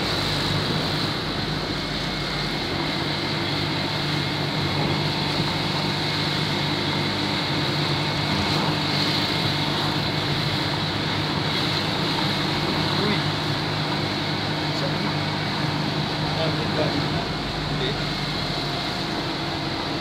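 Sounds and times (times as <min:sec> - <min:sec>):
continuous road noise rush: 0:00.0 - 0:20.0
vehicle engine humming: 0:00.0 - 0:20.0.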